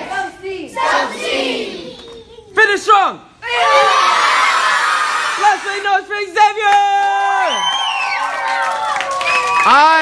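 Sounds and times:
loud yells: 0:03.4 - 0:05.9
group shouting and cheering: 0:03.4 - 0:10.0.

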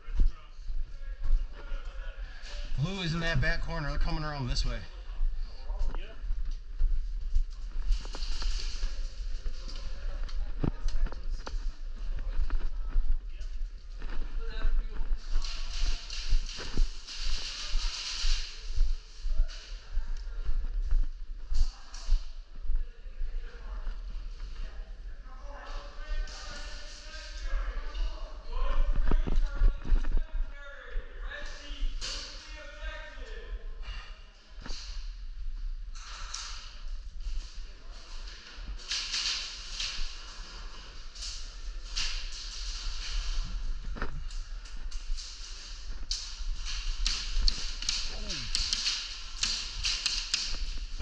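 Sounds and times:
indistinct voices in a hall: 0:00.0 - 0:35.2.

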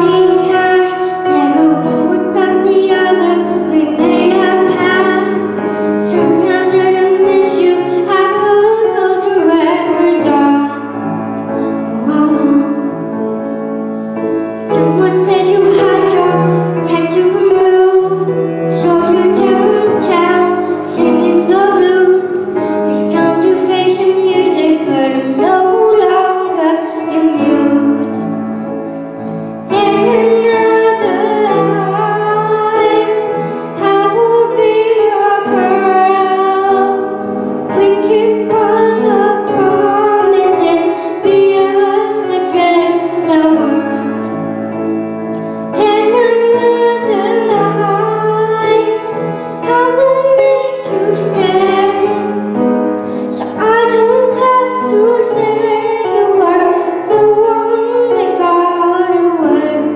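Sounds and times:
girl singing a pop ballad: 0:00.0 - 0:13.6, 0:14.2 - 0:59.9
piano accompaniment: 0:00.0 - 0:59.9.

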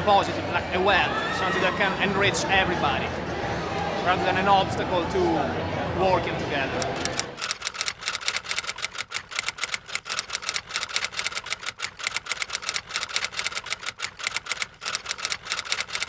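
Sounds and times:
typewriter keys clicking: 0:06.9 - 0:16.0.

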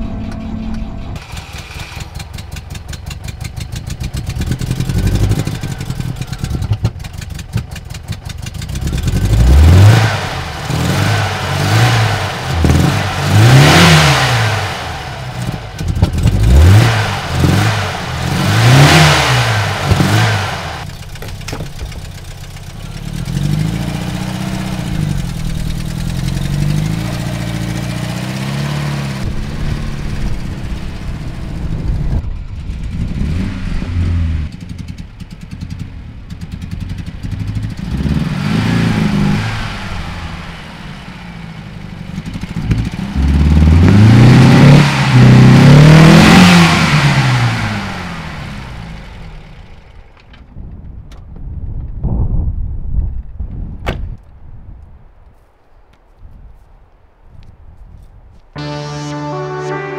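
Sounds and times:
car engine cranking and revving: 0:00.0 - 0:51.3.

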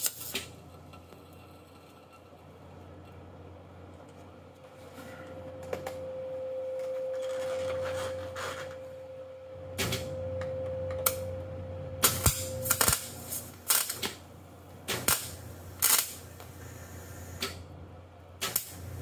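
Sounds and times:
welder arc crackling: 0:00.0 - 0:01.9, 0:12.0 - 0:14.2, 0:14.9 - 0:17.6, 0:18.4 - 0:19.0
steady hum: 0:00.0 - 0:19.0.

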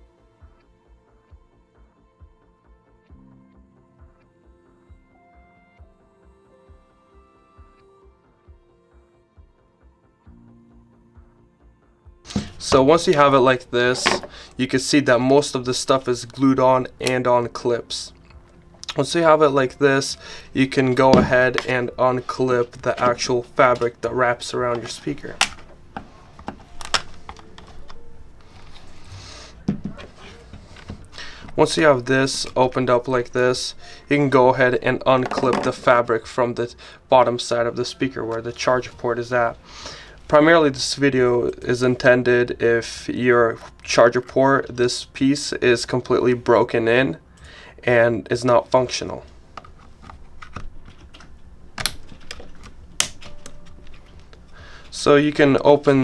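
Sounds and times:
plastic clips clicking and snapping: 0:24.7 - 0:25.7, 0:26.4 - 0:28.0, 0:49.6 - 0:54.0.

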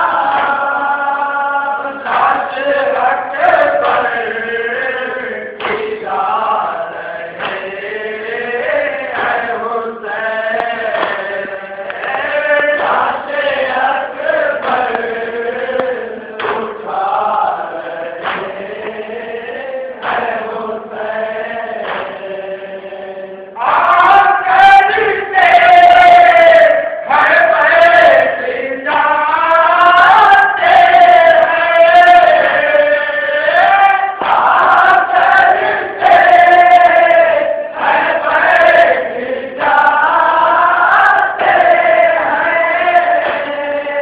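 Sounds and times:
male voices chanting a lament: 0:00.0 - 0:44.0.

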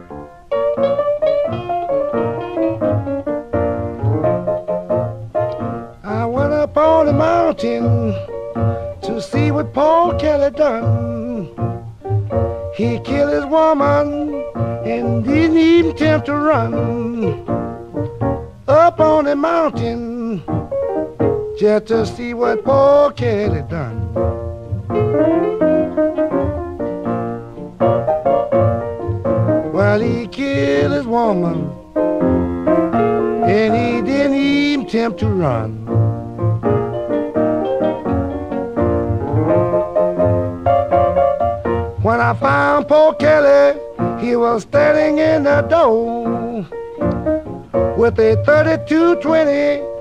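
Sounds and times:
blues piano: 0:00.0 - 0:50.0
guitar: 0:00.0 - 0:50.0
low bass beat: 0:01.6 - 0:07.3
person singing: 0:05.5 - 0:17.6, 0:18.6 - 0:24.2, 0:29.0 - 0:32.0, 0:33.0 - 0:35.9, 0:41.8 - 0:47.2, 0:47.9 - 0:50.0.

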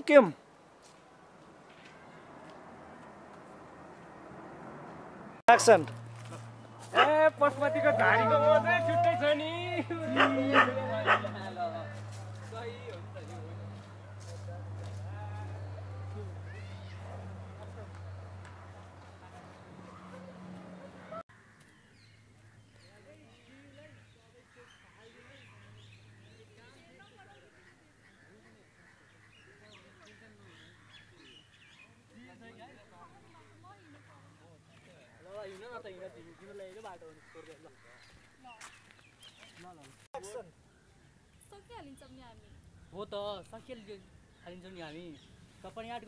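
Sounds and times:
dog barking: 0:06.9 - 0:07.2, 0:10.1 - 0:11.4.

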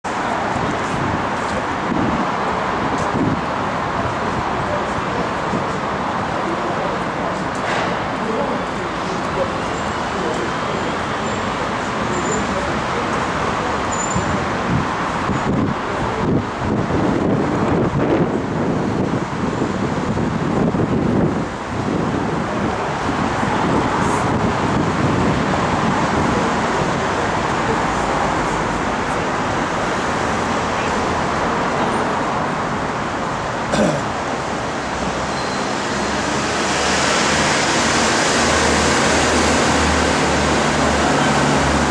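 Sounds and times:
road traffic noise: 0:00.0 - 0:41.9
wind on microphone: 0:00.1 - 0:05.9, 0:14.2 - 0:30.8.

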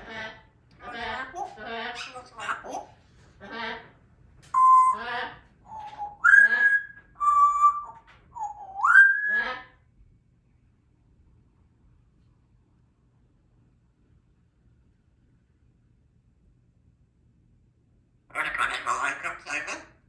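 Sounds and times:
parrot babbling chatter: 0:00.0 - 0:03.0, 0:18.3 - 0:20.0
parrot whistling: 0:04.6 - 0:05.0, 0:05.7 - 0:09.6.

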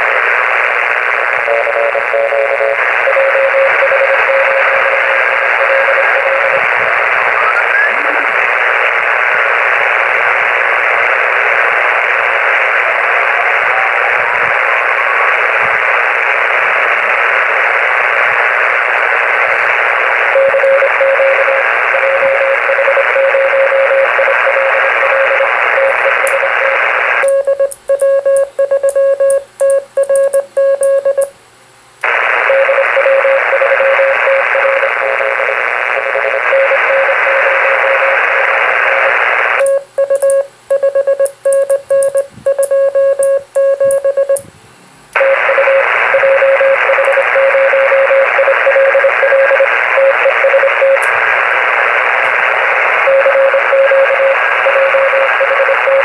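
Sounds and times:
radio band hiss: 0:00.0 - 0:27.3, 0:32.0 - 0:41.4, 0:45.1 - 0:56.0
morse code beep tone: 0:01.5 - 0:06.6, 0:20.3 - 0:26.2, 0:27.2 - 0:31.3, 0:32.5 - 0:34.8, 0:39.6 - 0:44.4, 0:45.2 - 0:51.0, 0:53.0 - 0:56.0.

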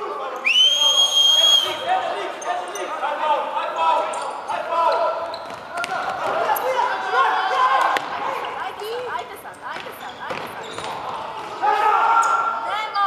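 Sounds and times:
referee's whistle blast: 0:00.4 - 0:02.0
players shouting: 0:00.5 - 0:13.0.

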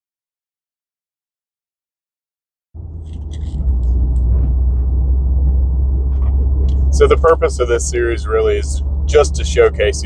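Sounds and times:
car engine and road noise: 0:02.8 - 0:10.0.

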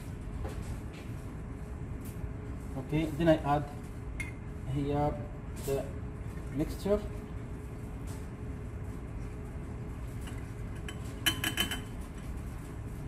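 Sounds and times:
quiet steady hum: 0:00.0 - 0:13.0
glassware clinking: 0:10.8 - 0:11.9.

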